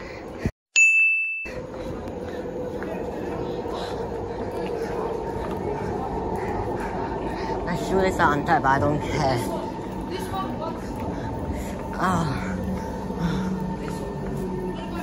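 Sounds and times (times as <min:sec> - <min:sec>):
bright ding: 0:00.8 - 0:01.5
train station platform noise: 0:01.5 - 0:15.0.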